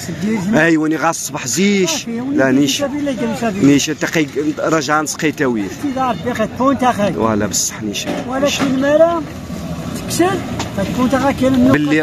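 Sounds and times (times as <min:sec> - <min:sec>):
man speaking: 0:00.0 - 0:09.4, 0:10.0 - 0:12.0.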